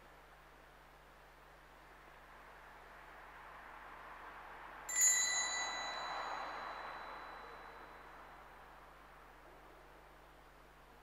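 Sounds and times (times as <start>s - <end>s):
small altar bell ringing: 4.9s - 8.1s.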